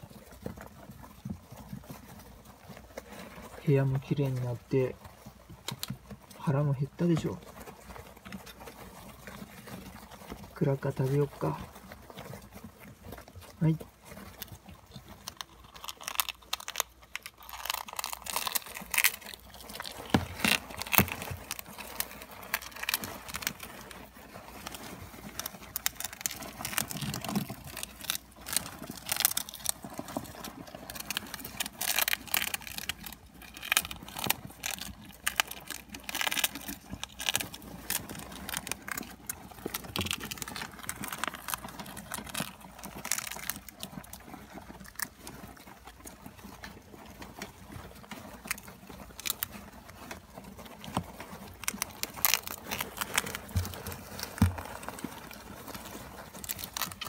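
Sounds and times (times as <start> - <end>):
hamsters scrambling over wood shavings: 0.0 - 57.0.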